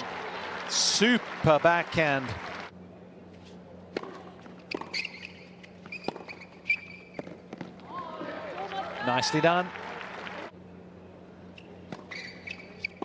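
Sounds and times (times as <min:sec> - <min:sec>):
shoes squeaking on court: 0:03.4 - 0:07.8, 0:11.6 - 0:13.0
tennis racket hitting ball: 0:03.9 - 0:05.3, 0:05.9 - 0:06.5.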